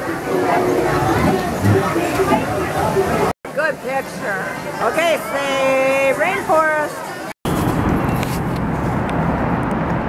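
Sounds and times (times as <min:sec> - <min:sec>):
city traffic rumble: 0:00.0 - 0:10.0.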